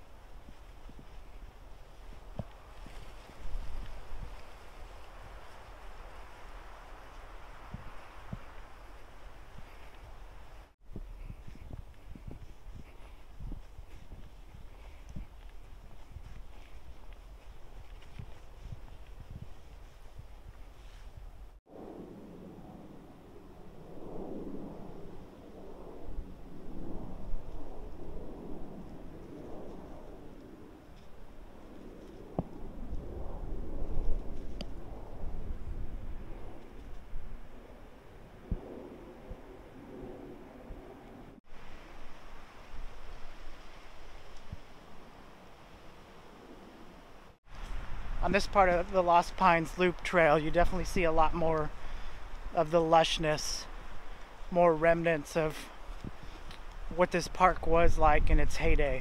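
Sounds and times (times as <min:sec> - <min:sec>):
footsteps on sandy trail: 0:00.0 - 0:21.6, 0:47.4 - 0:59.0
wind buffeting microphone: 0:00.0 - 0:22.6, 0:23.6 - 0:45.1, 0:55.6 - 0:59.0
wind gusting through pine trees: 0:00.0 - 0:59.0.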